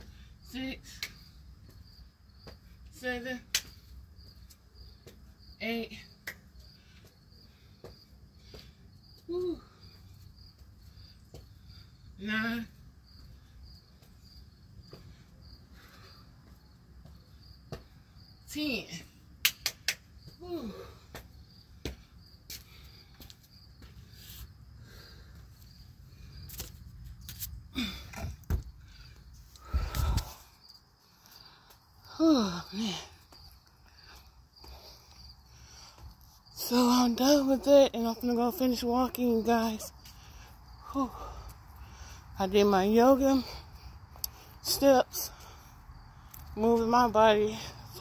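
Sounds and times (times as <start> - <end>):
crickets chirping: 0.0 - 48.0.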